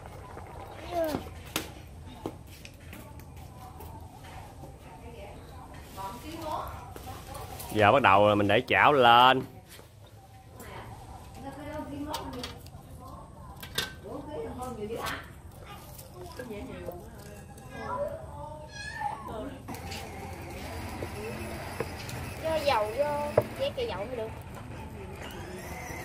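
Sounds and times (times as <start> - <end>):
children and adults talking: 0.0 - 26.0.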